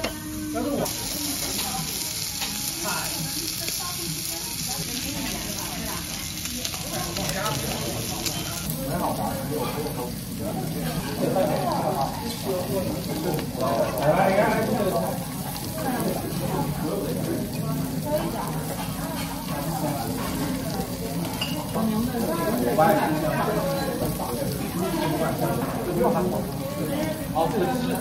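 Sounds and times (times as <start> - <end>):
pork sizzling on a griddle: 0.0 - 28.0
voices chattering: 0.0 - 28.0.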